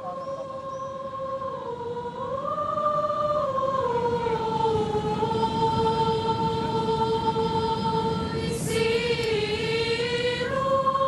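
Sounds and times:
choir singing long notes: 0.0 - 11.0
steady background rumble: 0.0 - 11.0.

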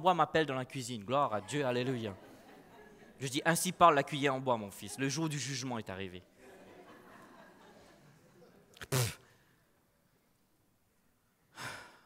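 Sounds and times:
man breathing: 11.5 - 12.0.

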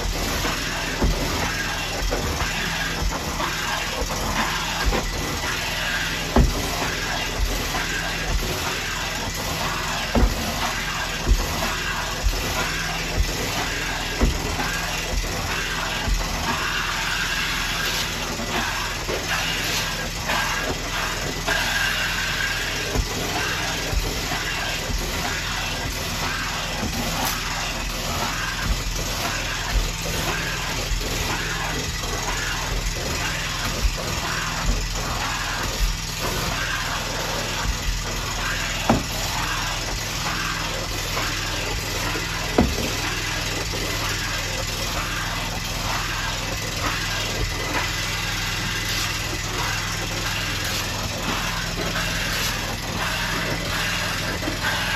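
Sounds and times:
engine humming: 0.0 - 54.9.

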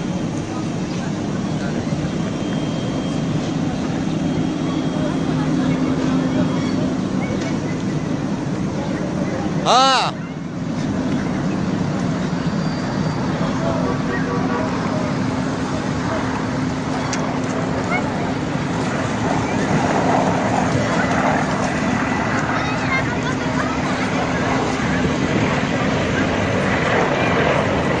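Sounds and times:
heavy vehicle engine running: 0.0 - 28.0.

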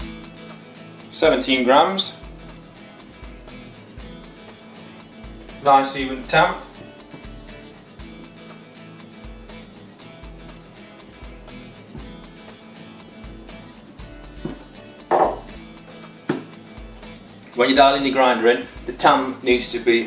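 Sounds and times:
background music with steady beat: 0.0 - 20.0
metal knocks of coffee tamper: 14.5 - 15.6.

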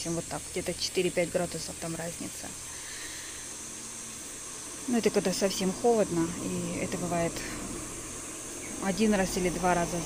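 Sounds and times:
faint low hum: 0.0 - 10.0
high-pitched hiss: 0.0 - 10.0.

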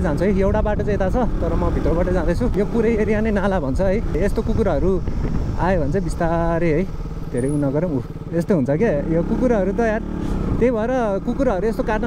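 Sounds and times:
man talking: 0.0 - 12.0
motorcycle engine running: 0.0 - 12.0.

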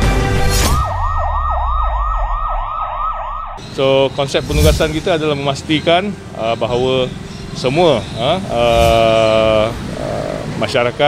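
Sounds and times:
electronic siren yelping: 0.5 - 4.1.

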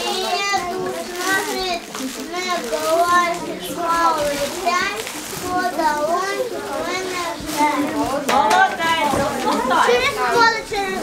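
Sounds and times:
child reciting a verse: 0.0 - 11.0
children's voices: 0.0 - 11.0.

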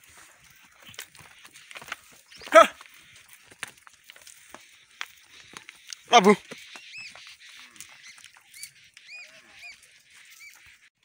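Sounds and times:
water buffalo herd moving: 0.0 - 10.9
bird calling: 0.0 - 11.0
loud pitched animal call: 6.1 - 10.6.

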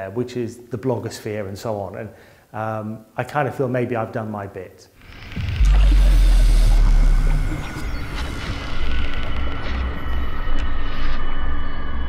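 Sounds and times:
deep bass rumble: 5.0 - 11.0
glitchy noise: 5.0 - 12.0.

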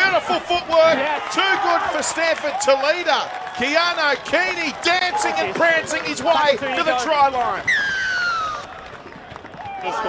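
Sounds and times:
crowd and field noise: 0.0 - 10.0.

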